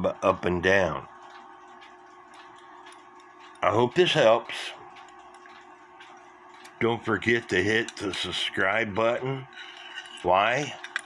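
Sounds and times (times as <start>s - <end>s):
man talking: 0.0s - 1.1s, 3.6s - 4.9s, 6.8s - 9.5s, 10.2s - 10.8s
faint clock ticking: 0.0s - 9.2s
low steady hum: 0.0s - 11.0s.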